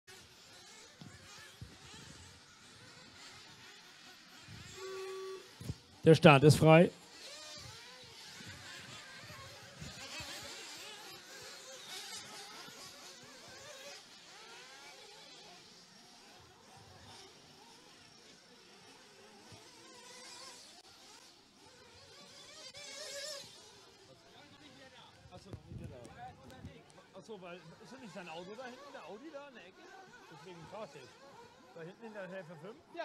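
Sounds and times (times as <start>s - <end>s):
rc cars motor buzz: 0.1s - 33.0s.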